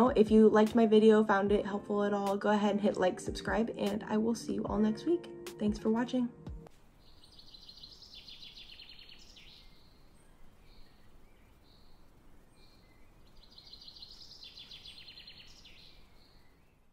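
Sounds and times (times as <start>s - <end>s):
light hiss: 6.7s - 16.8s
bird chirps: 7.0s - 16.9s.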